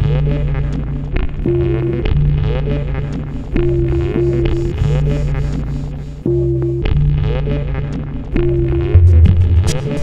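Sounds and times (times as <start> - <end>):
low bass drone: 0.0 - 10.0
sustained synth tones: 0.0 - 10.0.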